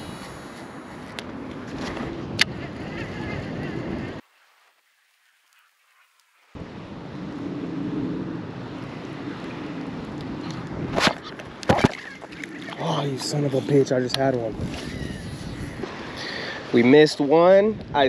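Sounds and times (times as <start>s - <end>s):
wind buffeting microphone: 0.0s - 4.2s, 6.6s - 18.0s.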